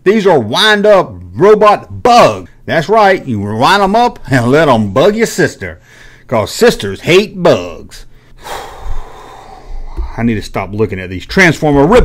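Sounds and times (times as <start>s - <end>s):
man breathing in: 5.8s - 6.3s, 8.1s - 10.1s.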